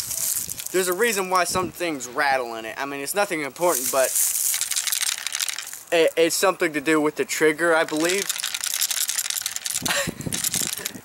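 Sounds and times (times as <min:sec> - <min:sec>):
loose metal part rattling: 0:03.7 - 0:05.9, 0:07.8 - 0:11.0.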